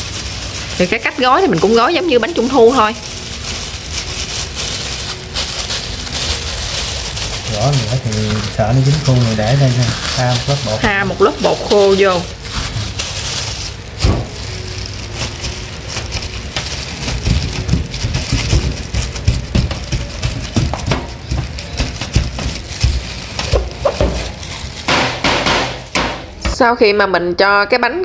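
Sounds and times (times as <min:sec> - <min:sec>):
plastic gloves crinkling: 0:00.0 - 0:26.9.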